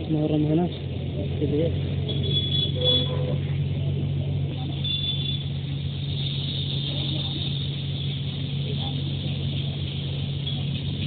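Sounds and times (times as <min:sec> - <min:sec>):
bus engine droning: 0:00.0 - 0:11.0.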